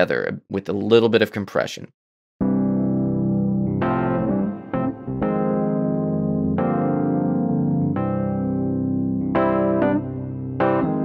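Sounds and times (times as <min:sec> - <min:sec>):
electric piano and piano chords: 0:02.4 - 0:11.0.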